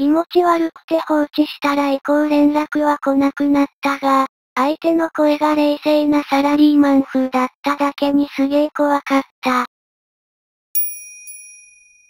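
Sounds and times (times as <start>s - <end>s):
bright bell-like chime: 10.8s - 12.0s.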